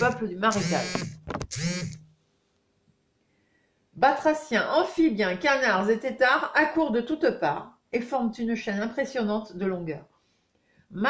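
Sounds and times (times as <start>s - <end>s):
woman speaking: 0.0s - 1.0s, 4.0s - 10.1s
sharp click: 0.6s - 2.0s.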